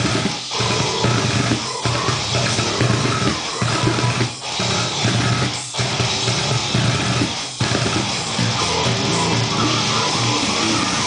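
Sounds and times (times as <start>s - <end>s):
death metal band: 0.0s - 11.0s
fast dense drums: 0.0s - 11.0s.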